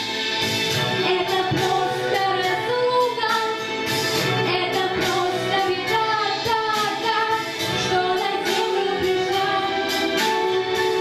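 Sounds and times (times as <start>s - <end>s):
musical accompaniment: 0.0s - 11.0s
girl singing into a microphone: 1.0s - 3.6s.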